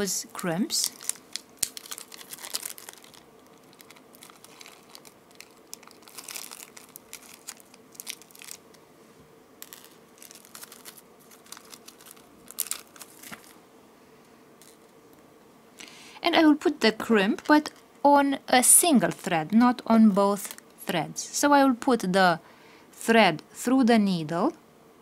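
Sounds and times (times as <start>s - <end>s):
packaging crinkling and rustling: 0.4s - 8.8s, 9.6s - 13.6s, 14.6s - 14.9s, 20.3s - 20.7s.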